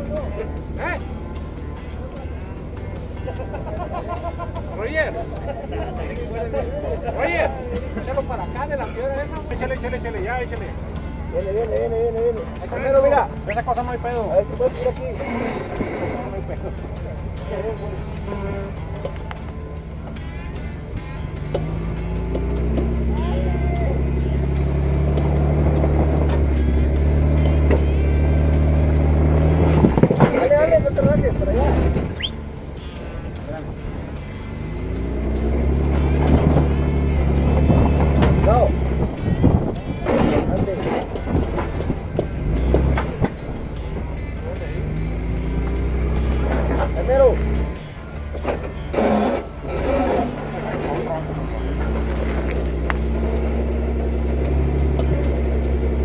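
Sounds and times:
car engine working under load: 0.0 - 56.0.

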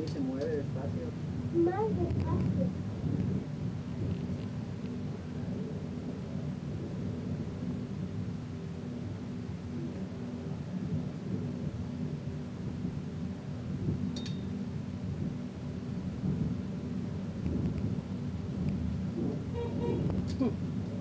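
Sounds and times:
funicular car rumbling on rails: 15.0 - 21.0.

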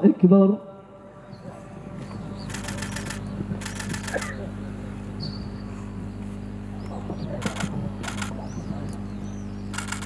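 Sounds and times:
loudspeaker electrical hum: 0.0 - 10.0
rapid fluttering clicks: 2.5 - 4.4, 7.4 - 8.4, 9.7 - 10.0.

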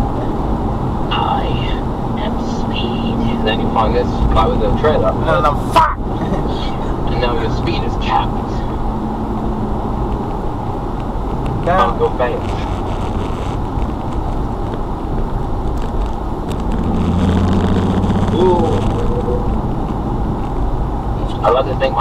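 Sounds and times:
car engine hum: 0.0 - 22.0
road noise: 0.0 - 22.0.

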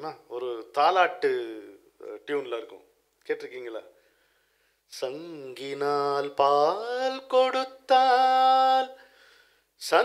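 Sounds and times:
man speaking: 0.0 - 4.0
man singing unaccompanied: 4.9 - 9.1, 9.8 - 10.0.

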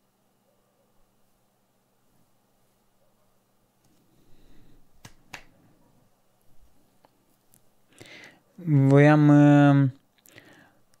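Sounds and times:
soft rustle: 1.1 - 7.9.

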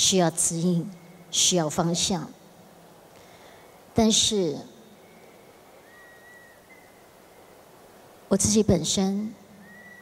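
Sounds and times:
microphone room tone hiss: 0.0 - 10.0
faint steady high tone: 4.0 - 7.7, 8.3 - 10.0.

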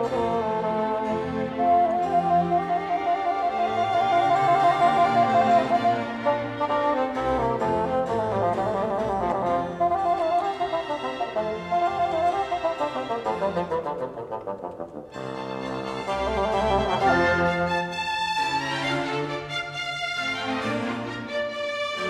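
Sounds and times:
solo bassoon: 0.0 - 19.6
string chamber orchestra: 0.0 - 22.0.

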